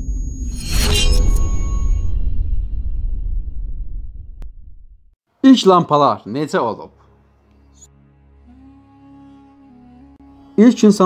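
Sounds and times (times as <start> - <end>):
deep low rumble: 0.0 - 5.2.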